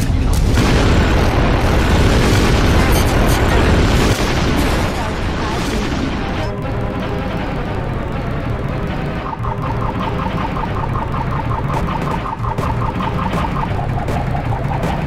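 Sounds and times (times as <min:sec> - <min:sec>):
layered music and sound effects: 0:00.0 - 0:15.0
rapid high-pitched pulse: 0:00.0 - 0:15.0.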